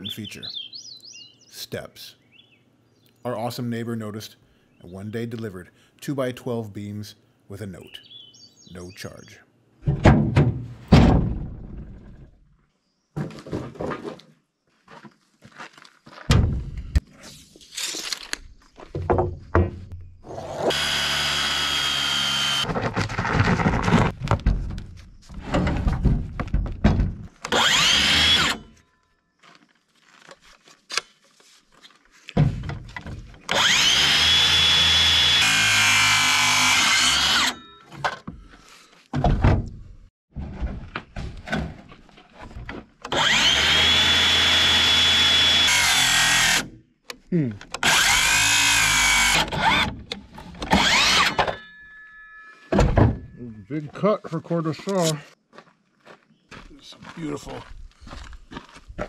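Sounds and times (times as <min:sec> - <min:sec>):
heavy boards thumping: 0:09.8 - 0:12.2, 0:22.7 - 0:27.3
power saw cutting lumber: 0:20.3 - 0:24.1, 0:27.5 - 0:28.7, 0:33.5 - 0:37.6, 0:43.1 - 0:46.7, 0:47.8 - 0:50.0, 0:50.6 - 0:51.6.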